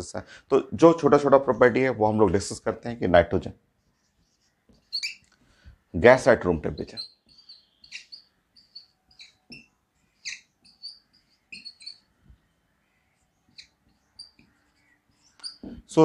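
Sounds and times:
marker squeaking on a whiteboard: 0:03.6 - 0:16.0.

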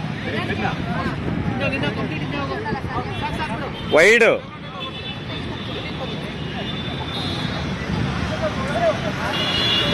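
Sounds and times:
vehicle traffic: 0:00.0 - 0:09.9.

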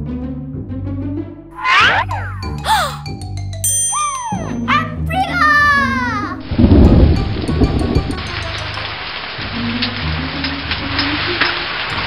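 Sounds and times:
light background music: 0:02.4 - 0:12.0
thunder rumble: 0:06.4 - 0:08.3
rain falling: 0:06.4 - 0:12.0.

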